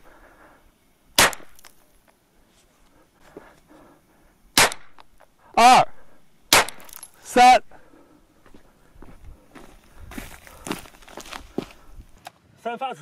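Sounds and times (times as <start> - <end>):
gunshots: 1.2 - 1.6, 4.6 - 5.0, 6.5 - 7.0.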